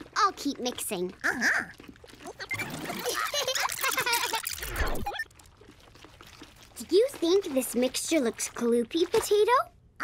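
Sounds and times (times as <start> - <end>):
garbled rewinding voice: 0.2 - 5.3.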